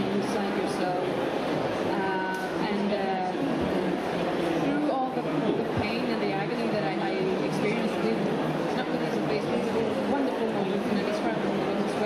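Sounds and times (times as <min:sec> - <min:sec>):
busy hall noise: 0:00.0 - 0:12.0.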